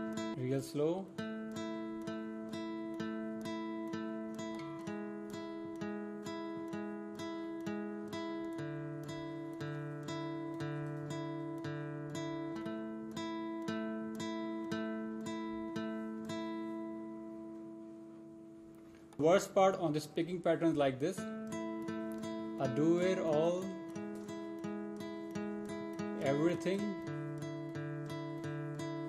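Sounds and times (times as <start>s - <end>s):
acoustic guitar picked slowly: 0.0s - 29.0s.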